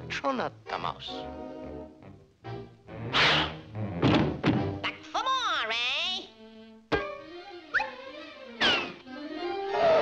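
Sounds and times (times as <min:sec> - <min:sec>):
cartoon music: 0:06.9 - 0:10.0
wavering pitched wail: 0:09.5 - 0:10.0.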